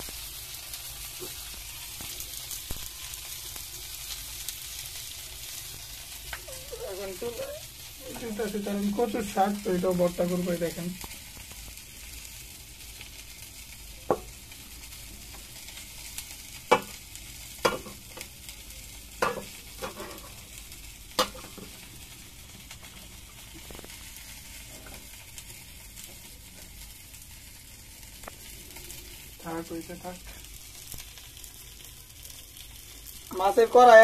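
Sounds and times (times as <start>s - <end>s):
greens sizzling in a pan: 0.0s - 34.0s
metal spatula knocking a pan: 16.7s - 17.0s, 17.6s - 18.0s, 19.2s - 20.2s, 21.2s - 21.7s.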